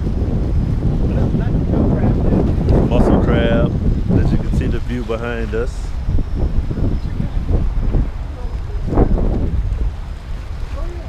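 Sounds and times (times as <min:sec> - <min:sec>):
wind buffeting microphone: 0:00.0 - 0:11.0
waves washing against rocks: 0:07.4 - 0:11.0.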